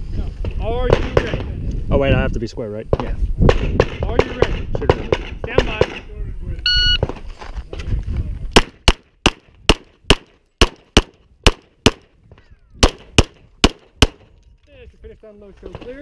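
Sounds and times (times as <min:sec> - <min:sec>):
low rustle of movement: 0:06.5 - 0:08.5
pistol shots: 0:08.6 - 0:12.1, 0:12.8 - 0:14.3.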